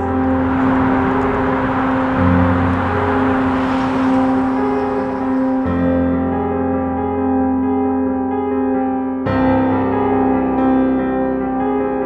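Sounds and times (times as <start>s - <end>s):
rushing noise: 0.0s - 7.5s
slow droning music chords: 0.0s - 12.0s.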